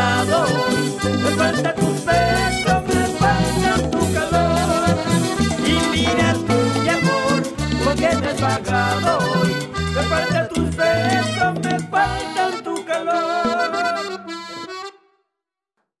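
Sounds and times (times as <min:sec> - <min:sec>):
electric bass: 0:00.0 - 0:12.4
accordion melody: 0:00.0 - 0:15.2.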